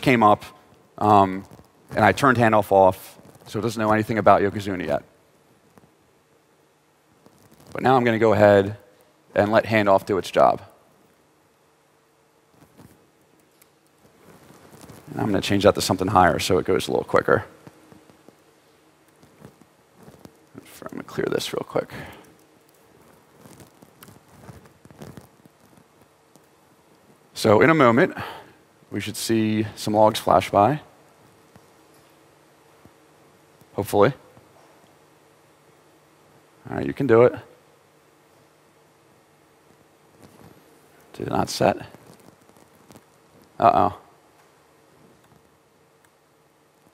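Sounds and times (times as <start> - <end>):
faint steady hum: 0.0 - 46.9.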